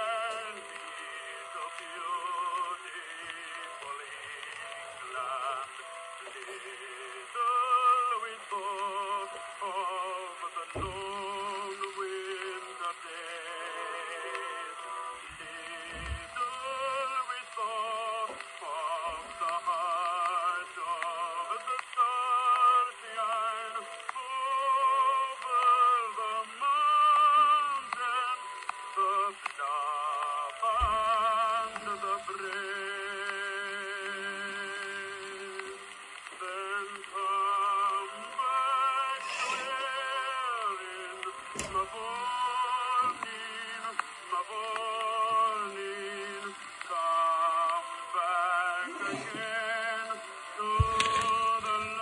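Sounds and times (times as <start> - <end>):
record surface hiss: 0.0 - 52.0.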